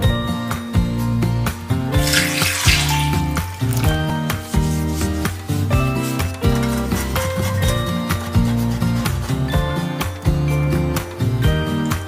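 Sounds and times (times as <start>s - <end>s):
background music: 0.0s - 12.0s
water pouring and splashing: 2.0s - 5.3s.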